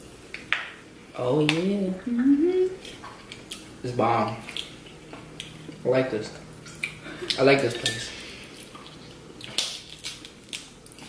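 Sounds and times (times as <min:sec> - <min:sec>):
crab shells cracking: 0:09.4 - 0:11.0.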